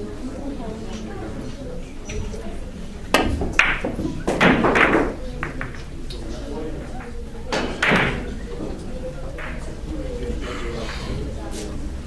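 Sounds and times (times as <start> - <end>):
billiard balls knocking: 3.1 - 6.0, 6.8 - 8.5, 9.3 - 9.9.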